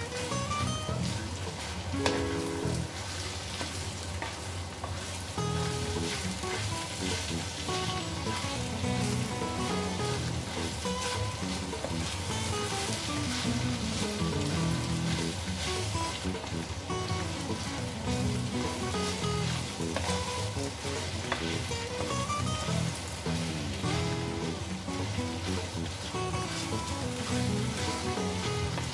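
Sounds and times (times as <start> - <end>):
meat sizzling in a frying pan: 0.0 - 28.9.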